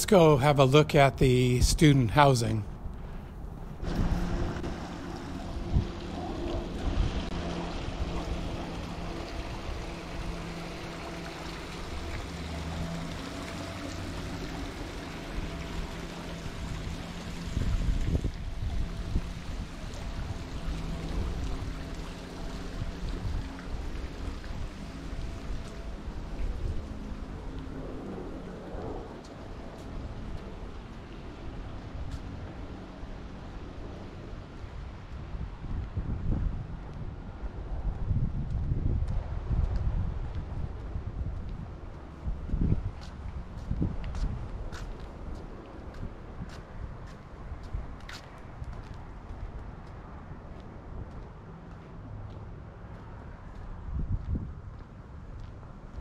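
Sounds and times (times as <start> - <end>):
mechanical hum: 2.7 - 34.5
gusty wind on microphone: 2.8 - 10.5, 16.4 - 21.8, 34.8 - 51.2, 53.7 - 55.3.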